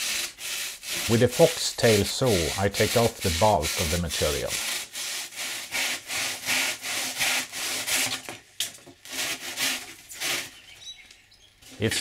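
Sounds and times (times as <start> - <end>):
handsaw cutting foam: 0.0 - 8.4, 9.0 - 10.6.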